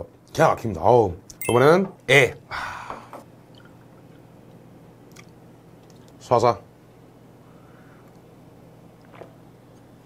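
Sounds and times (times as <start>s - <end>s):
low room hum: 0.0s - 10.0s
faint gulp swallowing: 9.0s - 9.4s.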